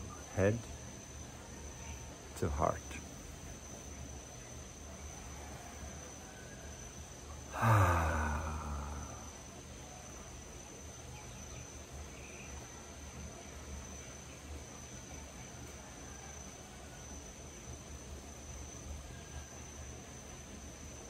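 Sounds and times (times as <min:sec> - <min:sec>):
crickets trilling: 0:00.0 - 0:21.0
faint outdoor hiss: 0:00.0 - 0:21.0.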